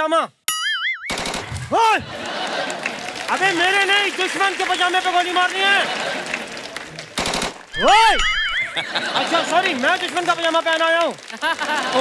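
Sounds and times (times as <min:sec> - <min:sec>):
rapid gunfire rattle: 0:01.1 - 0:01.6, 0:07.2 - 0:07.7
warbling tone: 0:07.8 - 0:08.9.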